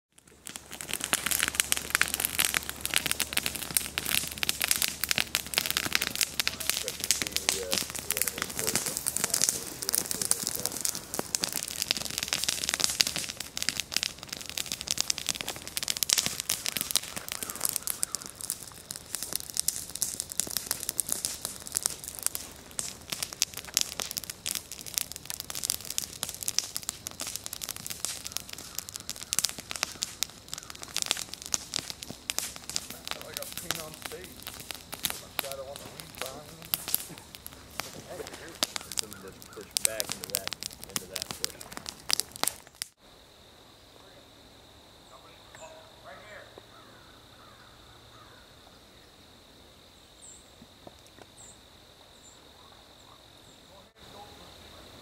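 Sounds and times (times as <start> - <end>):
wood bonfire crackling: 0.1 - 55.0.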